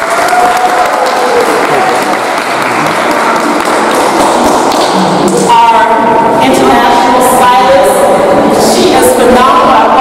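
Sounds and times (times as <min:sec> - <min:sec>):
audience applauding: 0:00.0 - 0:05.1
crowd voices: 0:00.0 - 0:10.0.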